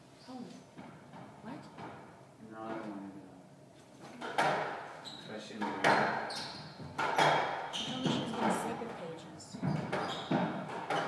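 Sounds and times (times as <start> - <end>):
squash ball hitting walls: 4.2 - 11.0.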